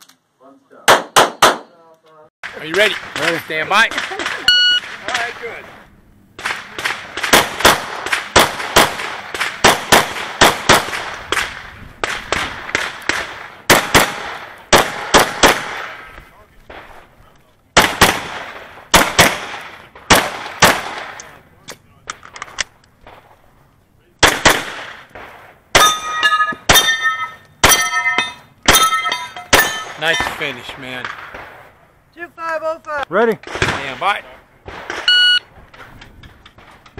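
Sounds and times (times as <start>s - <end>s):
pistol shots: 0.9s - 1.7s, 6.4s - 16.1s, 17.8s - 21.4s, 24.2s - 31.7s
steel targets ringing: 25.8s - 30.4s.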